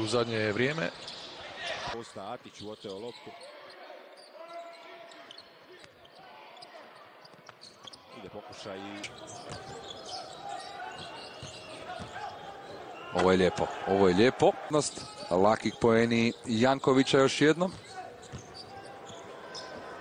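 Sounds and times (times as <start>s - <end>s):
basketball bouncing on court: 9.0s - 12.9s, 17.6s - 19.9s.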